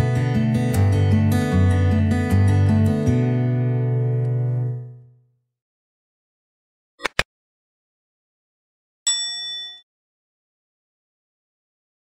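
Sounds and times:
bright bell ding: 9.1s - 9.8s.

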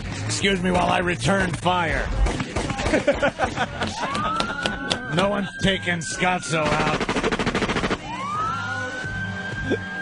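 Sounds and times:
rapid gunshots: 1.4s - 3.2s, 6.5s - 8.2s
music: 6.8s - 10.0s.

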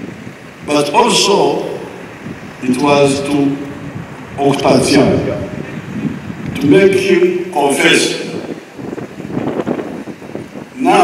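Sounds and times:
wind buffeting microphone: 0.0s - 11.0s
speech over loudspeakers: 0.7s - 1.9s, 2.6s - 5.8s, 6.5s - 8.4s, 10.8s - 11.0s.

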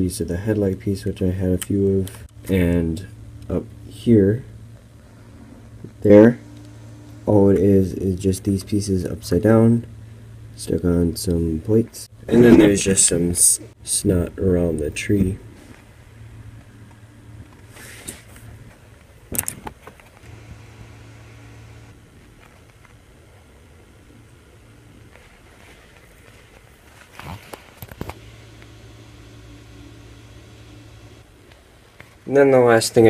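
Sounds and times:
faint low hum: 0.0s - 33.0s.

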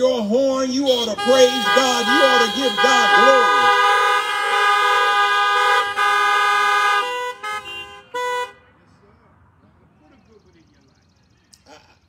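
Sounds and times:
car horns honking: 0.0s - 8.8s.

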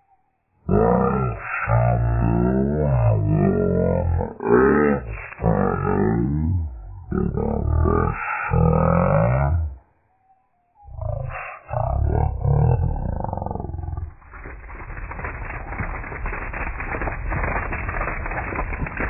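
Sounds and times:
slowed distorted cartoon voices: 0.6s - 9.9s, 10.8s - 14.2s
dense crackling rumble: 0.7s - 9.7s, 10.9s - 19.0s.

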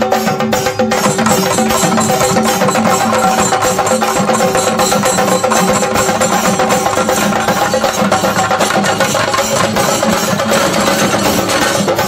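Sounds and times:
group of drums played with sticks: 0.0s - 12.0s.

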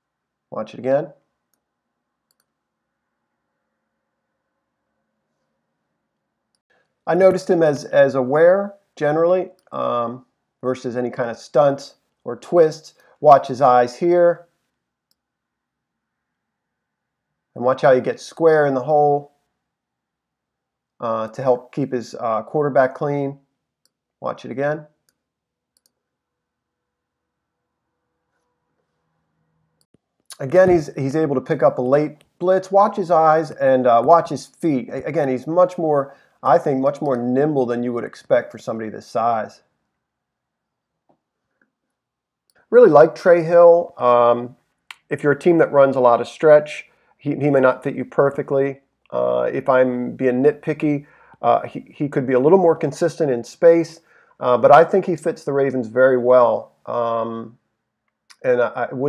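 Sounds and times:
computer mouse clicks: 2.3s - 2.6s.

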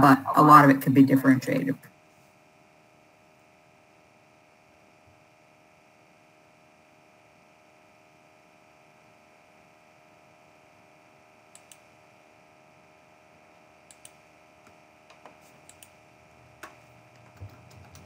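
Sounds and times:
steady low hum: 0.0s - 18.0s
mouse clicks: 11.5s - 11.9s, 13.9s - 14.2s, 15.1s - 16.0s.

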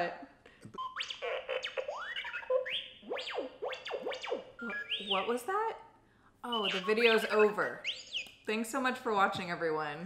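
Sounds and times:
toy robot electronic whistles and beeps: 0.8s - 5.5s, 6.5s - 8.4s.

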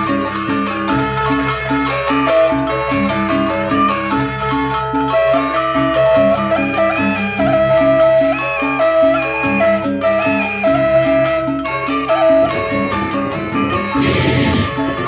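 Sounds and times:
kettle gongs interlocking figures: 12.6s - 15.0s.

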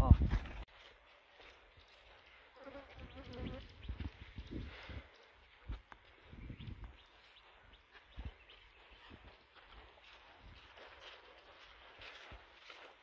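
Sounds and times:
soft footsteps: 0.0s - 13.0s
flying insect buzzing: 2.6s - 3.7s
brush rustling: 9.0s - 13.0s.

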